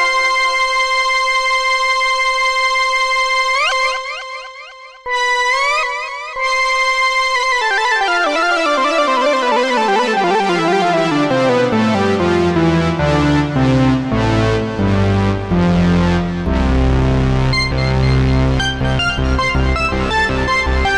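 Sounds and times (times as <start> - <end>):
synthesizer lead notes pulsing: 5.1 - 20.9
descending synthesizer run: 8.6 - 20.9.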